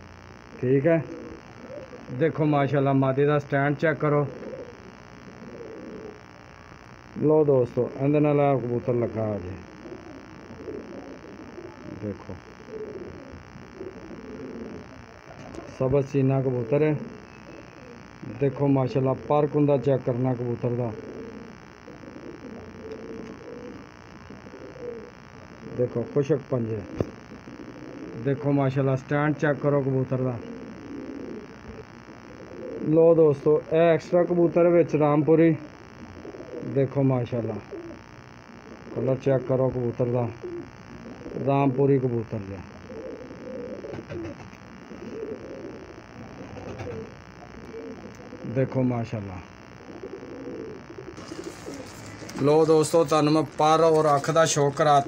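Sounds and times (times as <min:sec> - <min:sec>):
pigeons cooing: 0:00.0 - 0:55.0.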